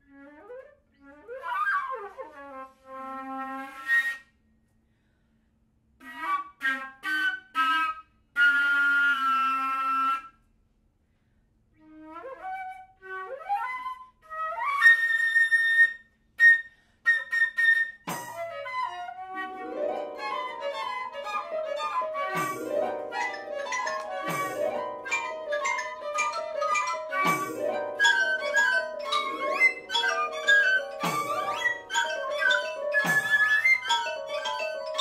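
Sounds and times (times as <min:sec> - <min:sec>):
flute playing: 0:11.8 - 0:35.0.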